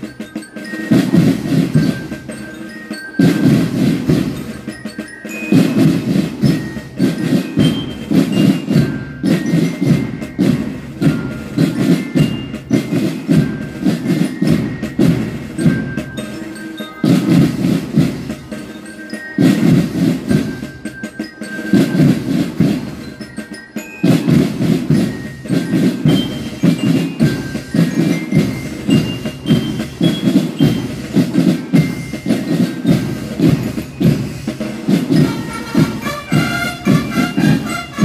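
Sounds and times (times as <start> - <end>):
drums beating march rhythm: 0.0 - 38.0
marching band playing: 0.0 - 38.0.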